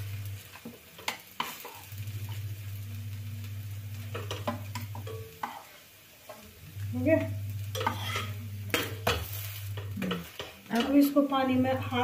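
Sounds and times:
low hum: 0.0s - 0.4s, 1.9s - 5.3s, 6.6s - 10.1s
butter stirred and scraped in bowl: 7.7s - 12.0s.

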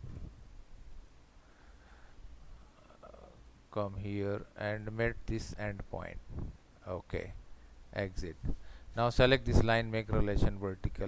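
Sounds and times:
faint low room hum: 0.0s - 11.0s
man talking: 3.0s - 6.2s, 6.8s - 11.0s.

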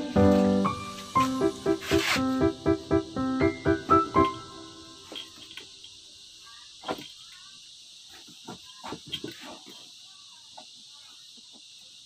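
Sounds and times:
background music: 0.0s - 5.0s.

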